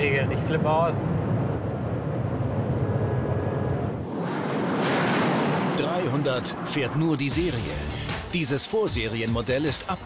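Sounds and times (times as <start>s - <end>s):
car rushing past: 3.8s - 7.2s.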